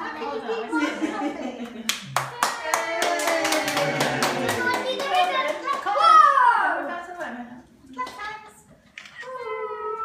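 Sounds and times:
hands clapping: 0:01.6 - 0:06.0.

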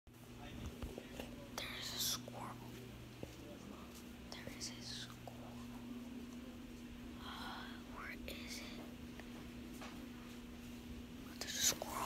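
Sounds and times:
steady low hum: 0:00.1 - 0:12.0
person whispering: 0:01.4 - 0:02.8, 0:04.3 - 0:05.6, 0:07.2 - 0:08.9, 0:11.2 - 0:12.0.

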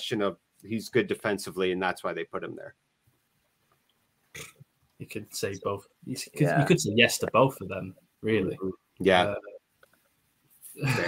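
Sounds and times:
throaty vocal noise: 0:04.4 - 0:04.6.

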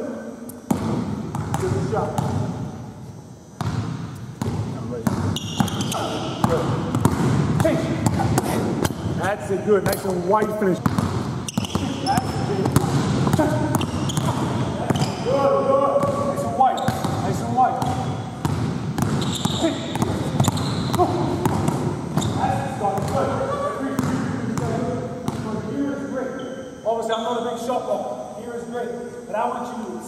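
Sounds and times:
people talking: 0:01.5 - 0:02.4, 0:04.7 - 0:06.9, 0:07.6 - 0:11.0, 0:11.6 - 0:18.2, 0:19.5 - 0:21.6, 0:22.2 - 0:30.0
basketball bouncing on hardwood: 0:03.6 - 0:09.0, 0:10.8 - 0:15.2, 0:17.8 - 0:22.4.

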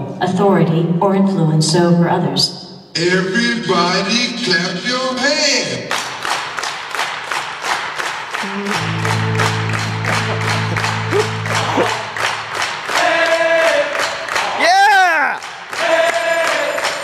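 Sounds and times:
drumline beating: 0:08.4 - 0:14.6
low sustained electronic chord: 0:08.7 - 0:12.5.

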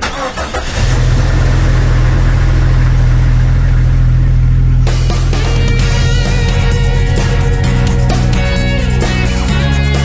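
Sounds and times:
car engine running: 0:00.0 - 0:10.0.

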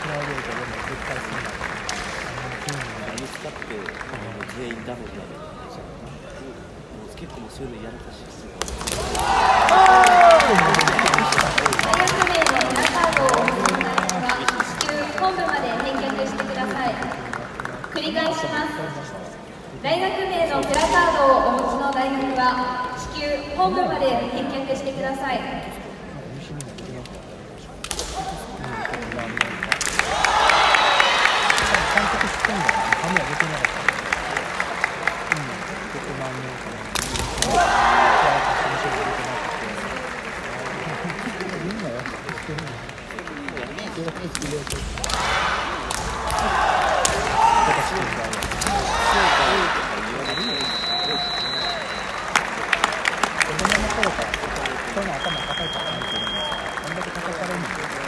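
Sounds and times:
fighters shouting: 0:37.3 - 0:39.0, 0:45.0 - 0:49.8.

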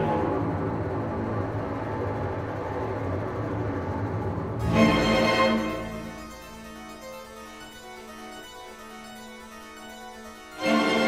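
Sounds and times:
string orchestra cluster texture: 0:00.0 - 0:08.8, 0:09.6 - 0:11.0.

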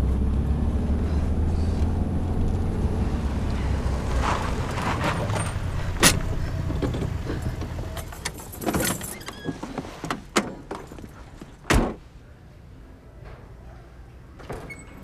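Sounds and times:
car engine rumbling: 0:00.0 - 0:11.2.

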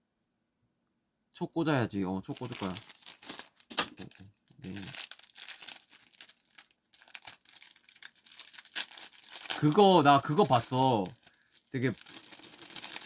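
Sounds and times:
plastic wrapping crinkling and tearing: 0:02.3 - 0:13.0.

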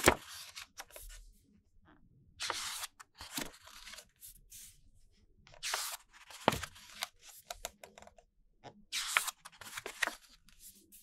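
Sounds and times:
paper pages clicking and rustling: 0:00.0 - 0:01.0, 0:02.4 - 0:04.1, 0:05.6 - 0:07.8, 0:09.0 - 0:10.8.

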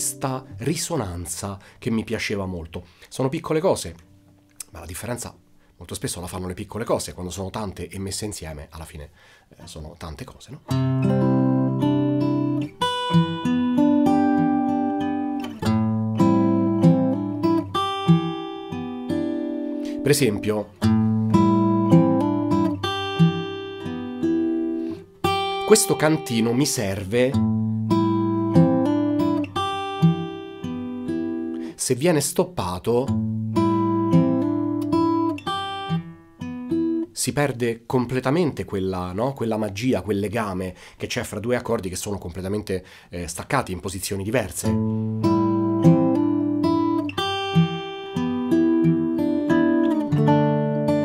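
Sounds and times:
fingerstyle acoustic guitar: 0:10.7 - 0:31.8, 0:33.1 - 0:37.2, 0:44.7 - 0:51.0.

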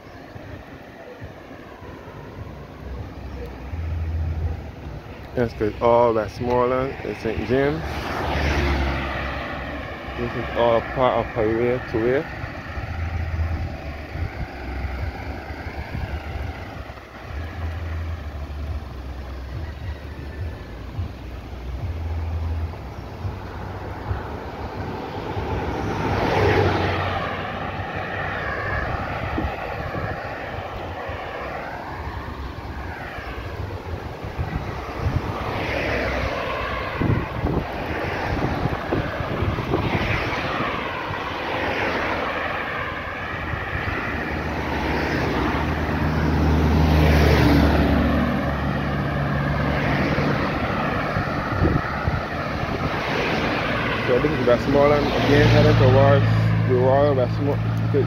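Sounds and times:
cars driving past: 0:00.0 - 0:58.0
deep engine rumble: 0:00.0 - 0:58.0.

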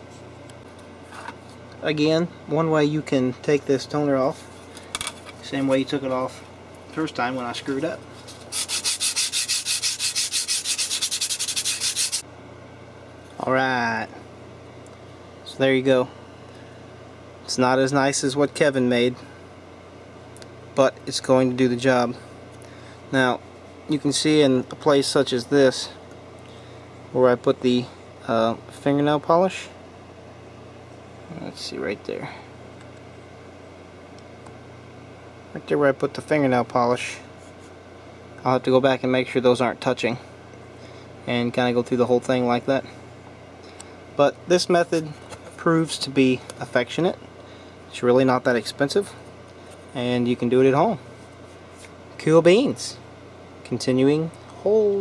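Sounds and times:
scrubbing circuit board: 0:08.5 - 0:12.2.

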